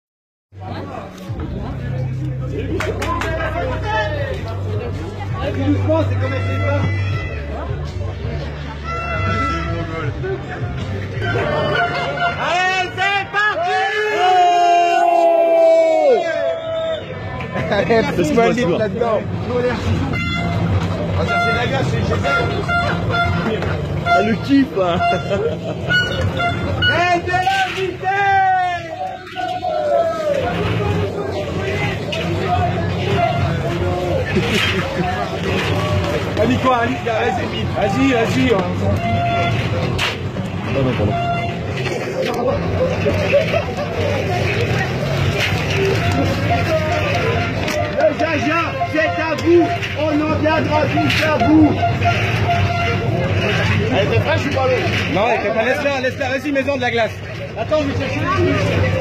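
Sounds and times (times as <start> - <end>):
people laughing and calling out: 0.6 - 59.0.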